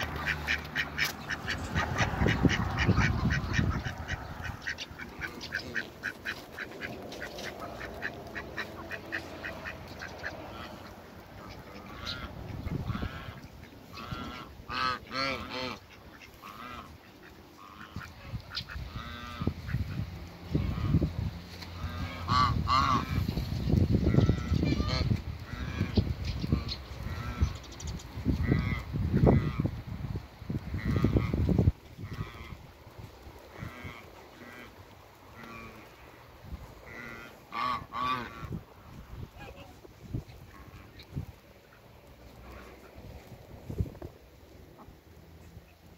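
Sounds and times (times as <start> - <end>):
ducks quacking: 0.0 - 29.7, 30.6 - 32.7, 33.4 - 39.8, 40.4 - 43.1.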